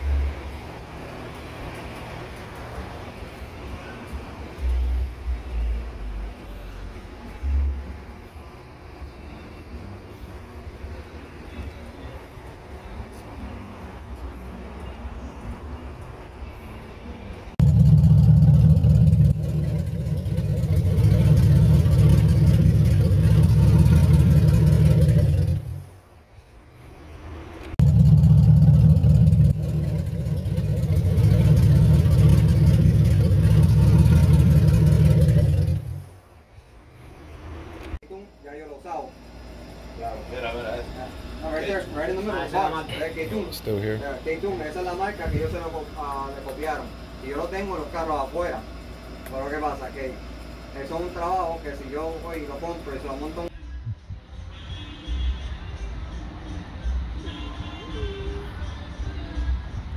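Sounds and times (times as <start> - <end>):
car engine revving: 17.6 - 25.9, 27.7 - 36.2.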